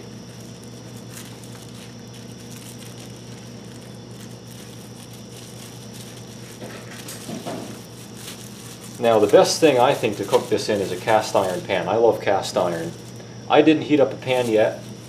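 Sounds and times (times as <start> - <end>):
low electrical hum: 0.0 - 15.0
plastic wrap crinkling: 0.0 - 15.0.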